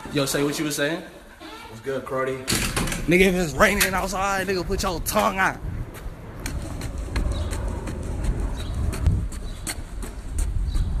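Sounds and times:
low wind and handling rumble: 1.2s - 11.0s.

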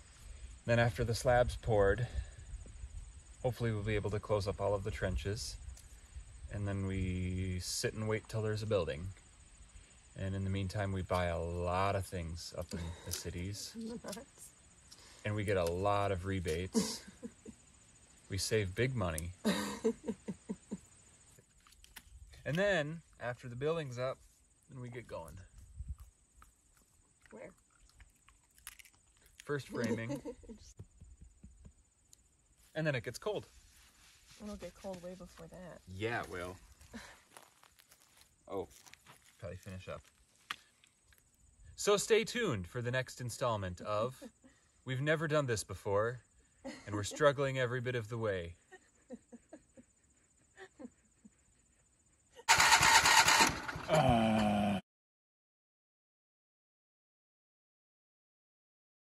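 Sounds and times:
loader engine starting and running: 52.5s - 54.2s.

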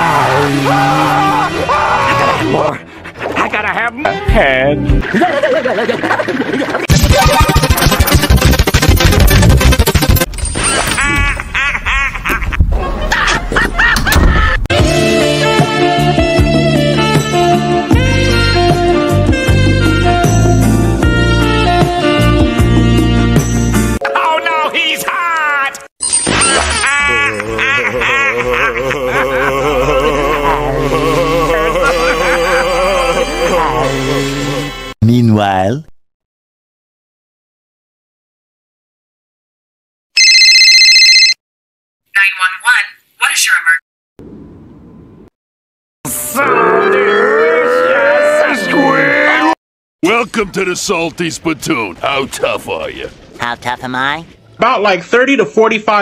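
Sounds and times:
telephone ringing: 40.2s - 41.4s.

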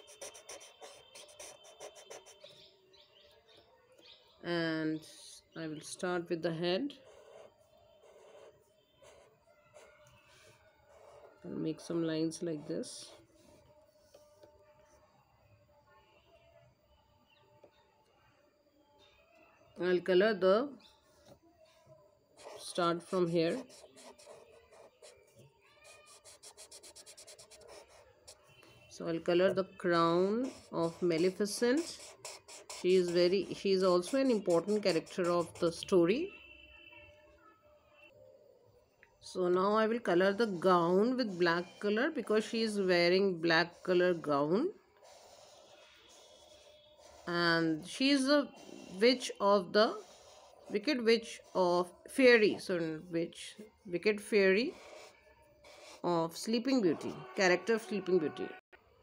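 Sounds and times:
marker scrubbing on paper: 0.0s - 2.6s, 6.8s - 14.4s, 22.4s - 28.6s, 29.2s - 36.0s, 39.7s - 52.5s, 54.6s - 56.5s
faint chirps: 6.8s - 19.8s, 20.5s - 56.1s.

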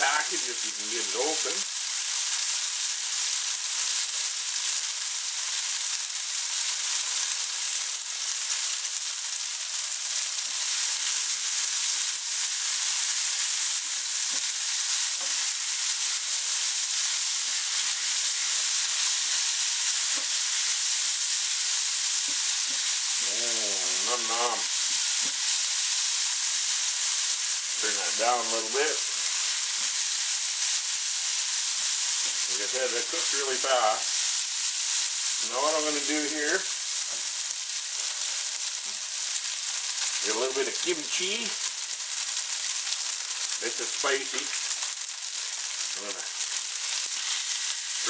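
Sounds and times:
noodles sizzling in a frying pan: 0.0s - 48.0s.

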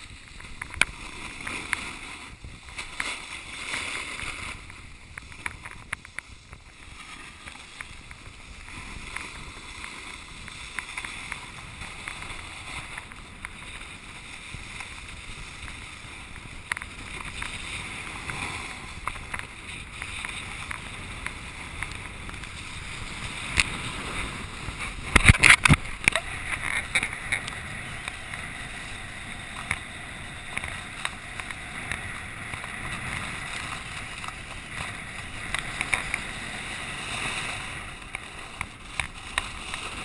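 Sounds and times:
snowboard edge clicks: 0.0s - 40.0s
snowboard scraping on snow: 0.0s - 40.0s.

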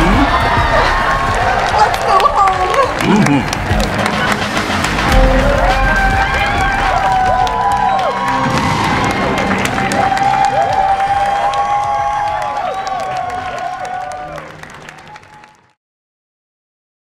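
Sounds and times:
audience cheering and clapping: 0.0s - 15.8s
music: 0.0s - 15.8s.

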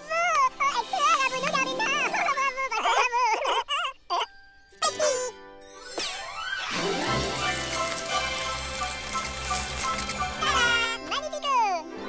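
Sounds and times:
cartoon sparkle jingle: 4.8s - 9.3s.

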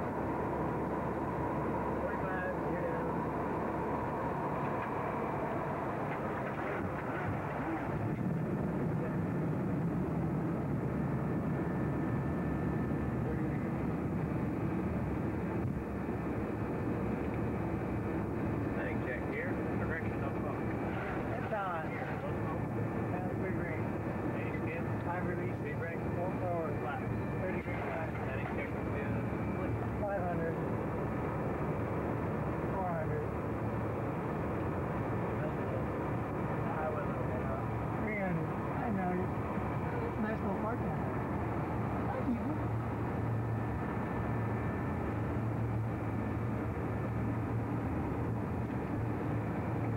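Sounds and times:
jet engines droning: 0.0s - 49.9s
muffled indistinct voices: 1.7s - 9.6s, 12.4s - 14.7s, 17.9s - 44.4s.

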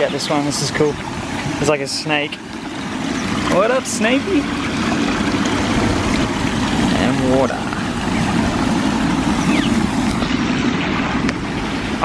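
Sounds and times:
water splashing over rocks: 0.0s - 12.0s.

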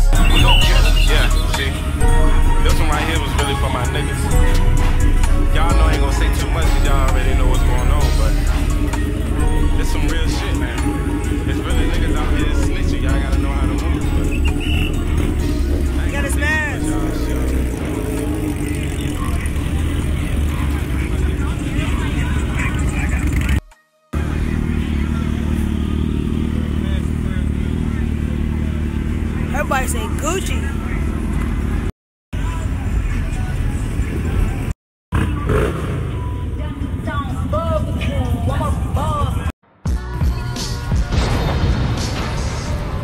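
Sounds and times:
crowd chatter: 0.0s - 1.9s, 10.1s - 23.6s, 24.2s - 35.8s
heavy low rumble: 0.0s - 23.5s
motorcycle and car engines: 0.0s - 23.6s, 24.2s - 39.5s.

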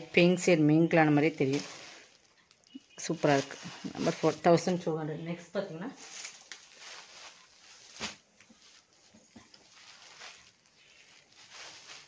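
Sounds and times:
faint rustling of silk fabric: 0.0s - 12.0s.

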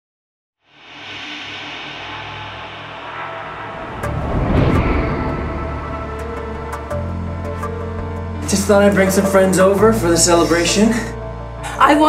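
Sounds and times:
dense drone of held tones: 0.7s - 8.5s
noisy wash: 0.8s - 8.2s.

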